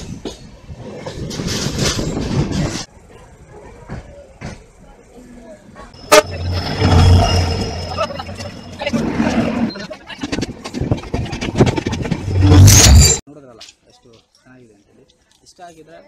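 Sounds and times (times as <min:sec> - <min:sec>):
train passing close: 0:00.0 - 0:12.7
moving train running noise: 0:00.0 - 0:13.2.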